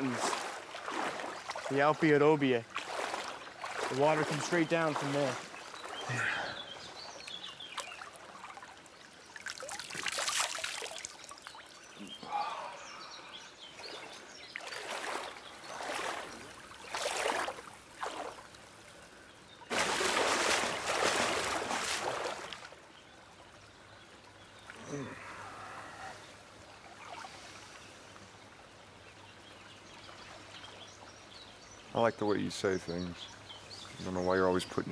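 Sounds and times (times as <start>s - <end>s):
faint trickle of running water: 0.0s - 19.6s, 22.6s - 34.9s
water splashed by hand: 2.7s - 6.1s, 9.4s - 11.7s, 13.8s - 18.5s, 19.7s - 22.7s.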